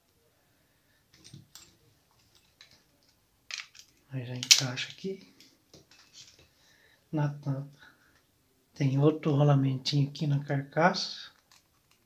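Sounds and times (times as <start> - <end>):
person speaking: 4.0 - 5.4, 7.1 - 7.8.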